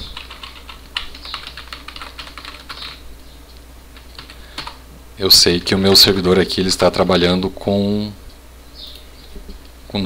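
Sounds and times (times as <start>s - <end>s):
computer keyboard typing: 0.0s - 3.0s, 4.0s - 4.8s.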